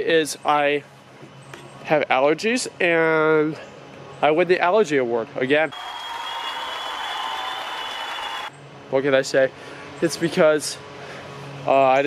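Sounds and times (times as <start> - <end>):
applause: 5.7 - 8.5.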